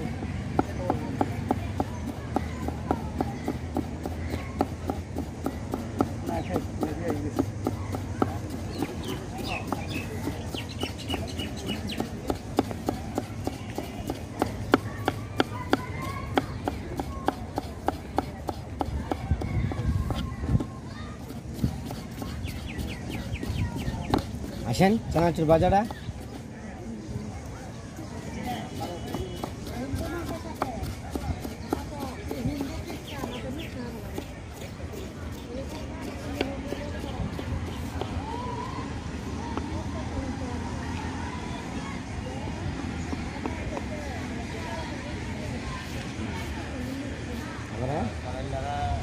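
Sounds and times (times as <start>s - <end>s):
faint voices of people: 0.0s - 49.0s
knife chopping on wooden board: 0.5s - 26.4s, 28.4s - 33.4s, 34.1s - 38.1s.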